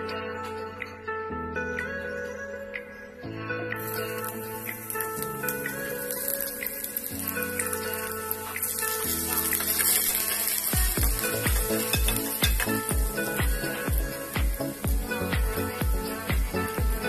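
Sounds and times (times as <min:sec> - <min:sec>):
background music: 0:00.0 - 0:17.0
food sizzling in hot oil: 0:03.8 - 0:17.0
kick drum beat: 0:10.8 - 0:17.0.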